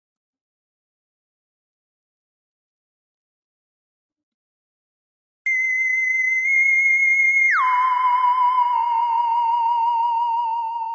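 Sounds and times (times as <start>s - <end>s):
theremin-like sliding tone: 5.5s - 10.9s.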